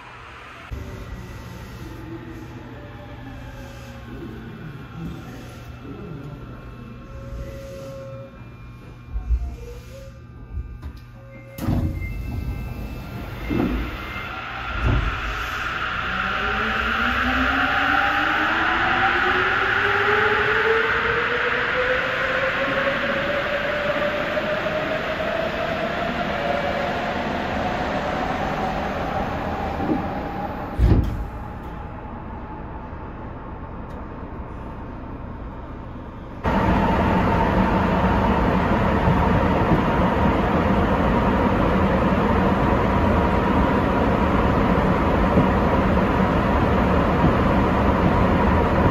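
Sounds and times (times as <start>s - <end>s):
subway car running noise: 0.0s - 48.9s
electric motor whine rising: 13.0s - 26.0s
train doors thudding: 29.8s - 31.4s.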